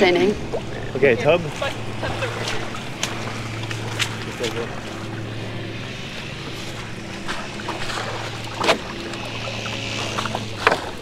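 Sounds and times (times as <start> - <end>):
steady low hum: 0.0 - 11.0
water splashing: 0.0 - 11.0.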